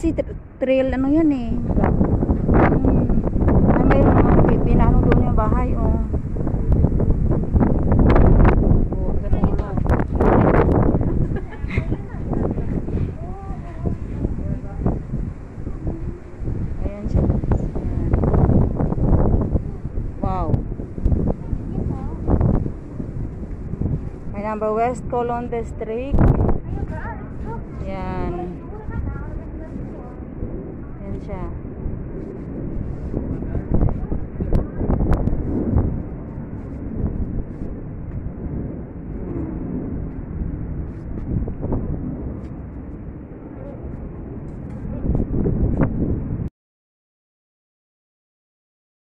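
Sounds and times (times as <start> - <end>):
people talking: 0.0 - 2.0, 2.6 - 6.2, 8.9 - 15.0, 15.6 - 18.3, 19.6 - 20.6, 21.3 - 22.3, 24.4 - 31.6, 33.4 - 34.9, 43.5 - 44.0
low background rumble: 0.0 - 46.5
wind buffeting microphone: 0.0 - 46.5.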